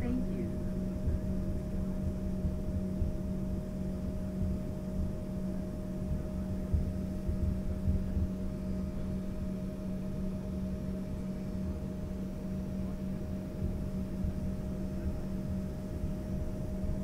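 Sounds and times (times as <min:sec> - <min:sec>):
jet engines humming in cabin: 0:00.0 - 0:17.0.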